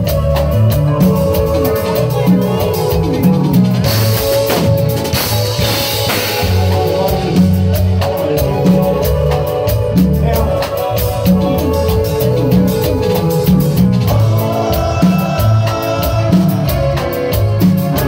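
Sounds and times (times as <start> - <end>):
drum kit beat: 0.0 - 18.0
electric bass line: 0.0 - 18.0
sustained keyboard chords: 0.0 - 18.0.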